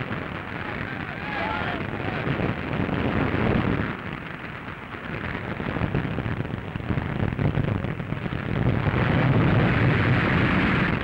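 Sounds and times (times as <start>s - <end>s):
dense crackling of fire: 0.0s - 11.0s.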